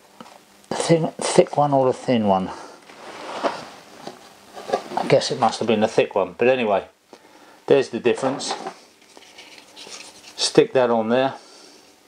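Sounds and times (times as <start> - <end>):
plastic parts rustling and rubbing: 2.9 - 5.4, 8.2 - 10.5.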